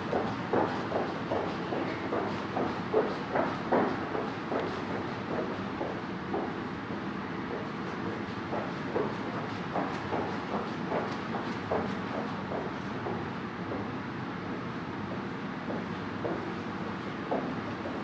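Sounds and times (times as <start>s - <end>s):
footsteps on padded floor: 0.0s - 6.7s, 7.5s - 13.9s, 15.7s - 18.0s.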